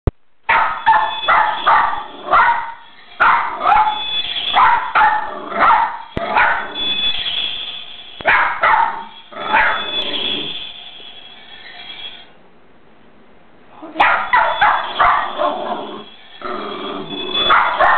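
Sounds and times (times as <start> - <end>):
dog barking: 0.5 - 6.9, 8.2 - 10.1, 14.0 - 15.9, 17.3 - 17.9.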